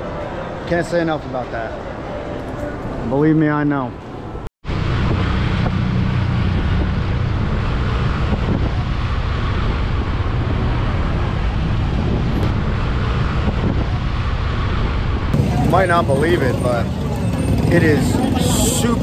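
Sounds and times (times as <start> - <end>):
road noise: 0.0 - 19.0
wind noise on microphone: 4.7 - 15.6
motorcycle engine: 4.7 - 19.0.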